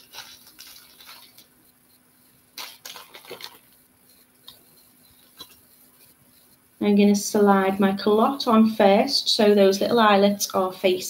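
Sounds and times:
small beads clicking and rustling: 0:00.0 - 0:01.6, 0:02.5 - 0:04.6.

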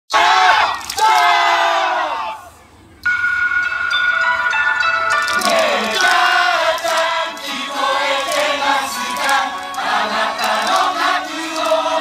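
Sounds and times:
music with held chord: 0:03.1 - 0:12.0.

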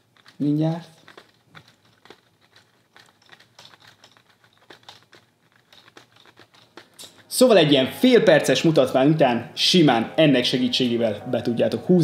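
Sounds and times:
plastic gears clicking: 0:00.0 - 0:07.7.

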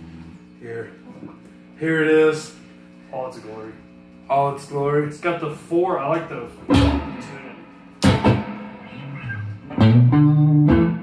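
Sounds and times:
electric guitar chords ringing: 0:06.5 - 0:11.0.

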